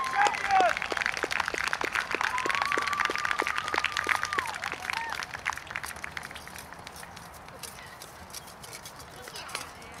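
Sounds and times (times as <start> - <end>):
horse hooves clopping on grass: 5.7 - 10.0.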